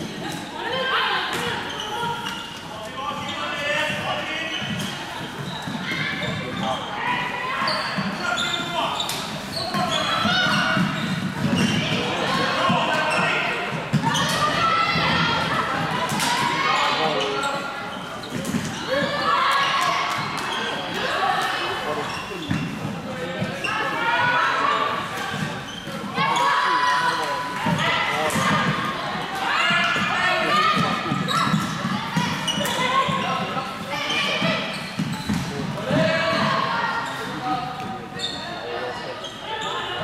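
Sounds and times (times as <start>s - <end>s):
players calling out: 0.0s - 40.0s.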